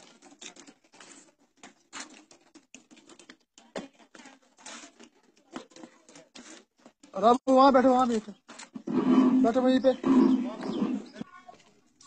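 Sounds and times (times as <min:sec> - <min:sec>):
faint scattered sounds: 0:00.0 - 0:12.0.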